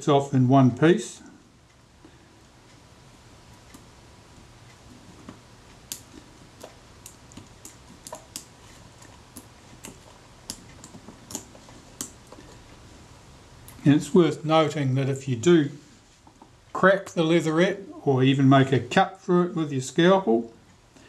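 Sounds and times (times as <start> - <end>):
small clicks and ticks: 3.5 - 12.8.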